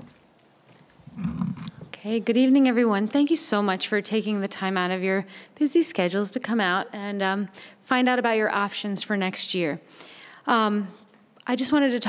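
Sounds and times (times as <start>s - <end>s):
microphone clicks: 0.7s - 2.0s.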